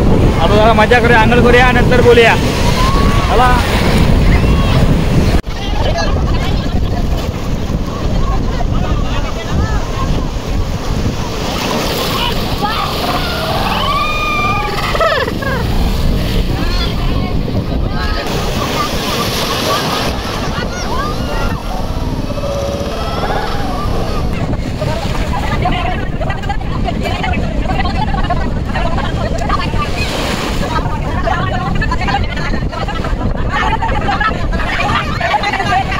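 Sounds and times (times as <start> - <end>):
waves breaking: 0.0 - 35.9
wind on microphone: 0.0 - 35.9
people shouting and laughing: 2.2 - 7.2, 7.8 - 35.9.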